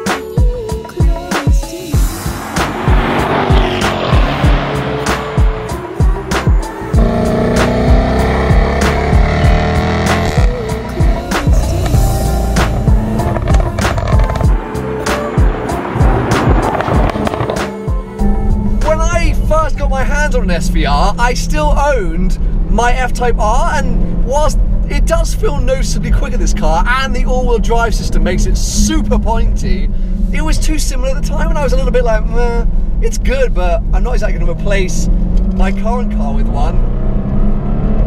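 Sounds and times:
background music with beat: 0.0s - 18.6s
car engine accelerating: 1.8s - 33.0s, 33.7s - 38.0s
man's voice: 10.8s - 12.8s, 18.8s - 36.8s.

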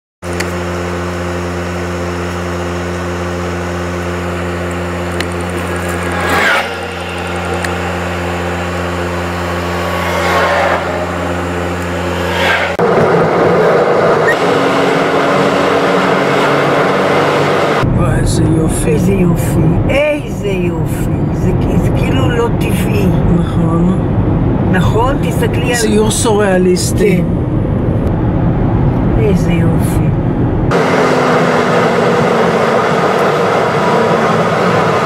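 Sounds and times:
car engine hum from inside: 0.2s - 35.0s
road and wind noise: 0.2s - 35.0s
vehicles rushing past: 0.2s - 35.0s.

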